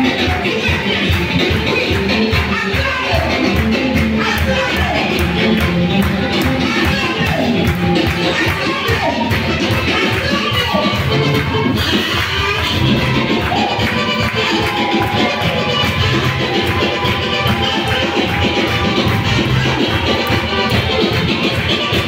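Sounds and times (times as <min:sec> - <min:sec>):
gospel praise music with singing: 0:00.0 - 0:22.0
hands clapping along: 0:00.0 - 0:22.0.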